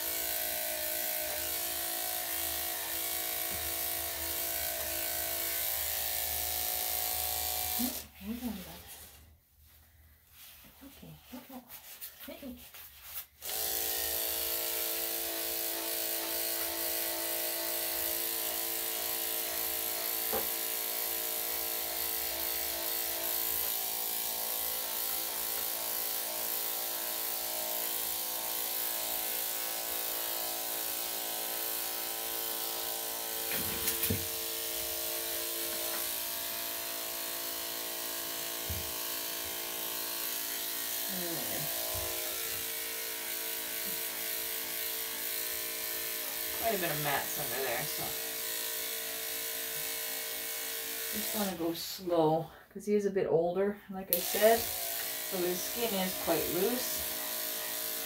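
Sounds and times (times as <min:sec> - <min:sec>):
electric clippers running: 0:00.0 - 0:08.2, 0:13.4 - 0:51.8, 0:54.1 - 0:58.0.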